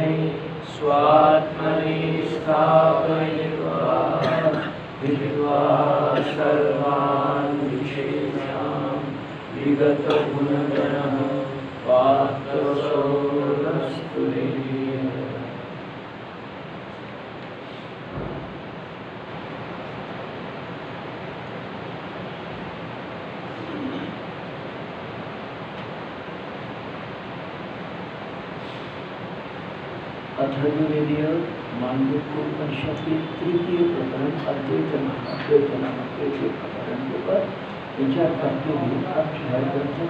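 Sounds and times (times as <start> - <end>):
man chanting verses: 0.0 - 15.6, 30.4 - 40.0
background hiss: 0.0 - 40.0.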